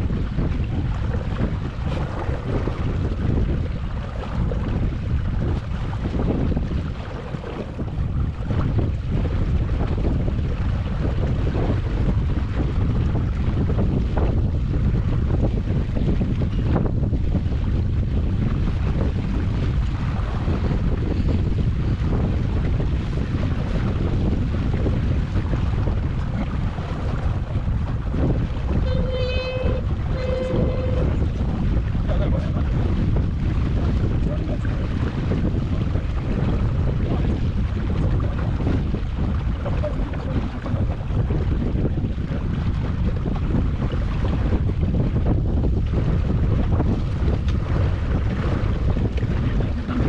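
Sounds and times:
water washing past: 0.0s - 50.0s
wind rumbling on microphone: 0.0s - 50.0s
short pitched tones: 28.8s - 31.2s.

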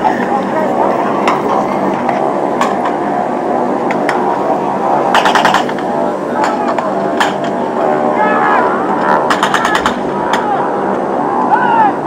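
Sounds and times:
aircraft engines droning: 0.0s - 12.0s.

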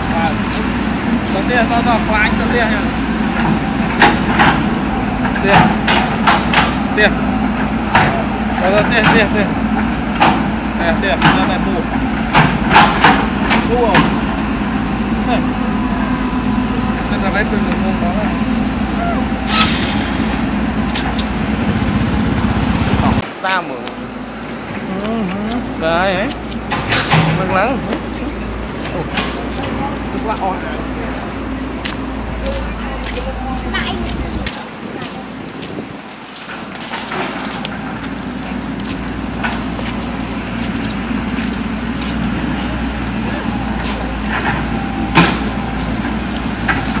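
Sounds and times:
diesel engine running: 0.0s - 47.0s
sharp knock: 19.5s - 20.4s.

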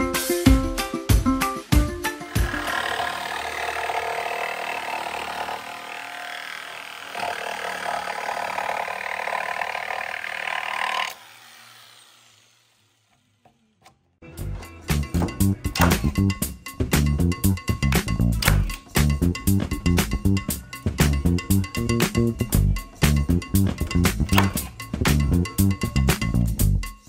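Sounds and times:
background music with a beat: 0.0s - 2.5s, 14.4s - 27.0s
jigsaw cutting wood: 2.2s - 13.6s.

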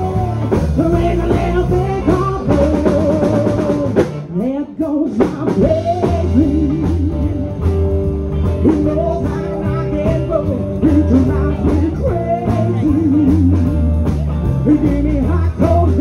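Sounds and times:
person singing: 0.0s - 7.8s, 8.4s - 16.0s
bass guitar: 0.0s - 16.0s
drum kit: 0.0s - 16.0s
electric guitar: 0.0s - 16.0s.

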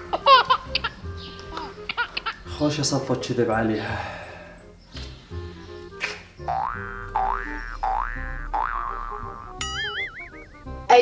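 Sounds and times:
light background music: 0.0s - 11.0s
wobbling warble: 6.5s - 10.9s
comic whistle-like glides: 9.2s - 10.8s.

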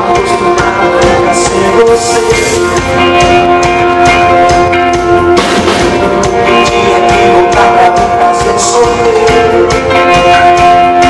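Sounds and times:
drum kit beat: 0.0s - 11.0s
guitars and keyboard chords: 0.0s - 11.0s.

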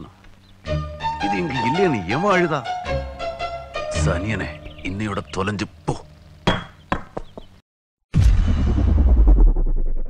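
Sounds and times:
sharp knock with ringing tone: 6.5s - 7.5s.

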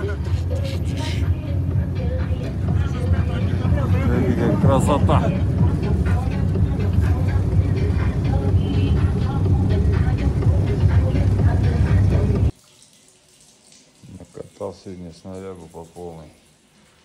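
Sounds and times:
truck engine and road noise: 0.0s - 12.5s.

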